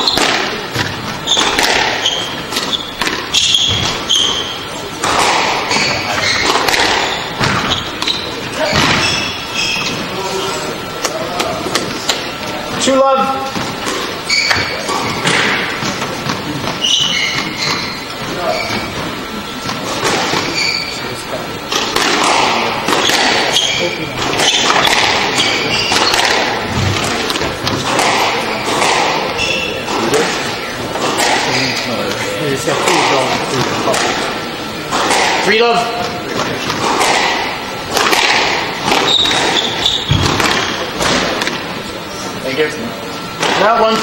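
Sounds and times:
squash ball struck by rackets: 0.0s - 9.7s, 13.5s - 18.1s, 21.7s - 31.8s, 32.8s - 41.8s
shoes squeaking on wooden floor: 0.0s - 10.7s, 13.5s - 32.3s, 38.4s - 41.4s.

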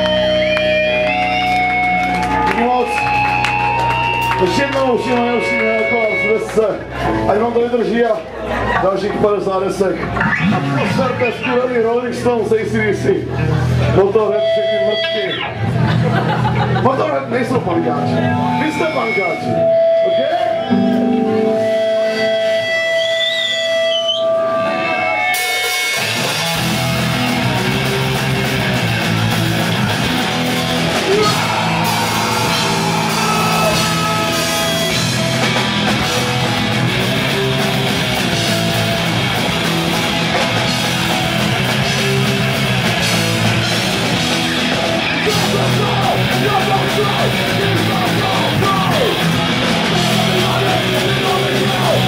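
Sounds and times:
sustained electric guitar notes: 0.0s - 7.6s, 10.0s - 11.6s, 17.8s - 52.0s
punk band playing live: 0.0s - 9.2s, 9.9s - 52.0s.

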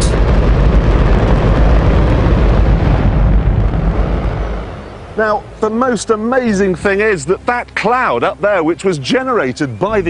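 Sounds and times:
rocket engine roaring: 0.0s - 6.5s.

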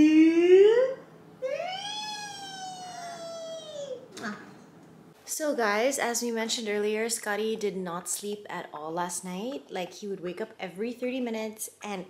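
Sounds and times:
baby squealing: 1.4s - 4.2s.

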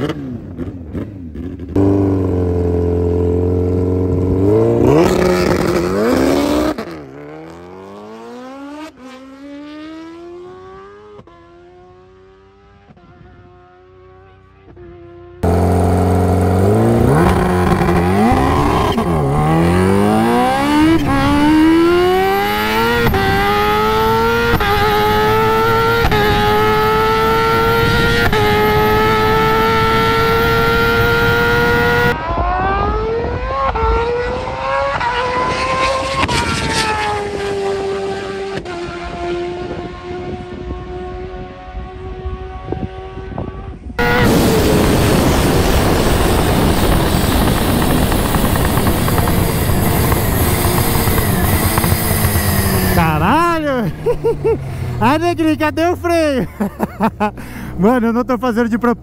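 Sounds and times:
motorcycle engine revving hard: 0.0s - 14.2s, 15.2s - 55.7s
faint engine rising in pitch: 4.3s - 56.2s
wind rush: 39.6s - 55.9s.

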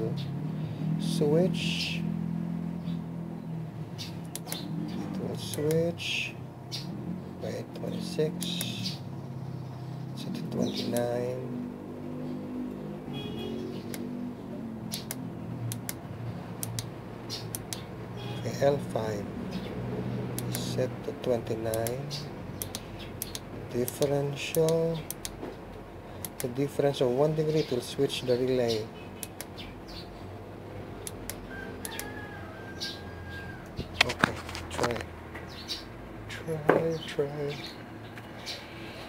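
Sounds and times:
push buttons clicking: 4.2s - 4.6s, 5.4s - 5.8s, 21.7s - 22.0s.

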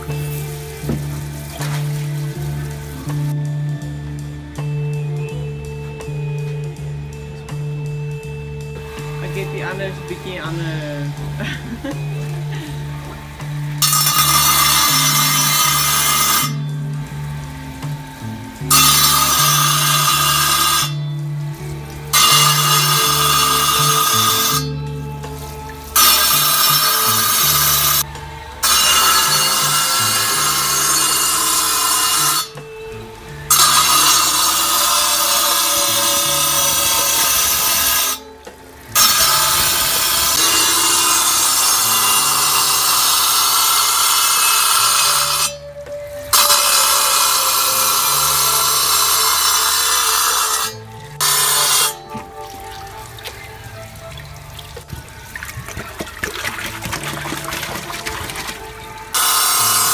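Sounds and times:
steady motor hum: 0.0s - 44.9s
glass grinding hiss: 13.8s - 38.3s, 38.9s - 45.7s, 46.3s - 53.0s, 58.9s - 59.9s.

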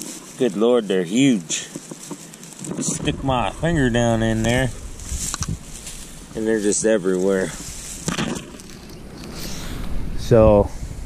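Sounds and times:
grass rustling: 0.0s - 11.0s.

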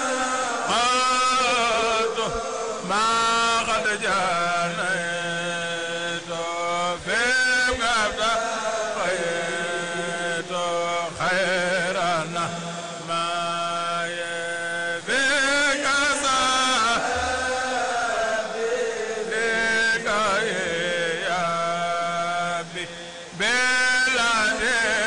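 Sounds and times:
men chanting into microphones: 0.0s - 25.0s.

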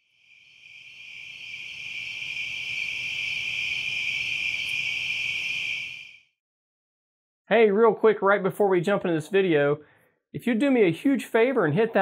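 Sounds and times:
crickets trilling: 0.0s - 6.2s.

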